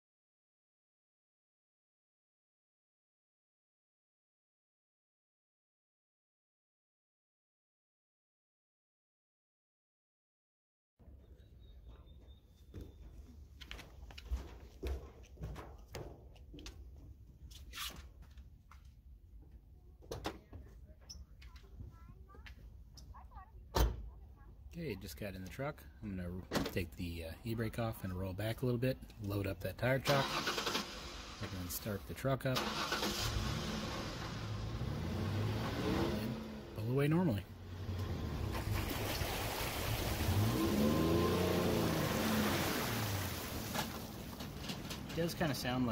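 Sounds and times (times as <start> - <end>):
water streaming and splashing: 37.7 - 45.0.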